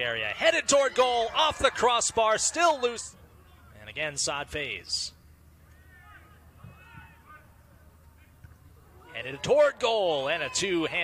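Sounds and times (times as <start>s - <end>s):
distant players shouting: 0.0s - 3.8s, 5.6s - 11.0s.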